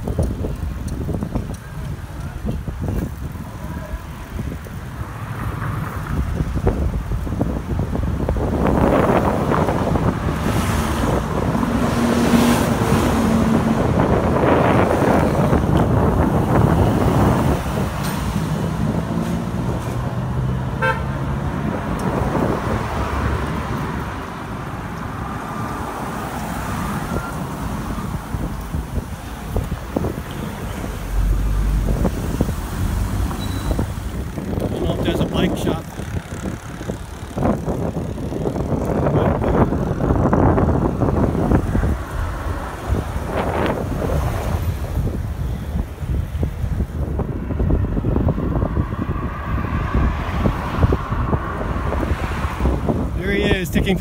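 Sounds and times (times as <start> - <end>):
traffic passing: 0.0 - 54.0
wind rumbling on microphone: 0.0 - 54.0.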